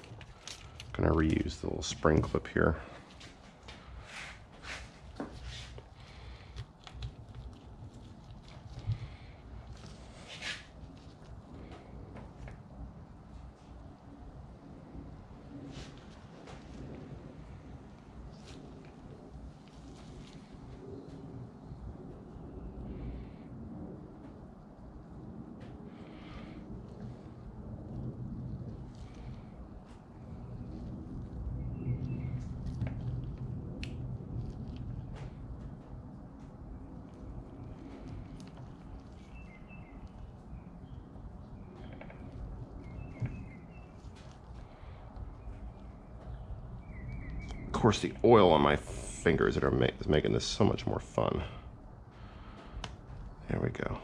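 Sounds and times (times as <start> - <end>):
small clicks and rubbing: 0.0 - 1.5
low uneven rumble: 0.0 - 54.0
faint bird chirps: 39.1 - 47.8.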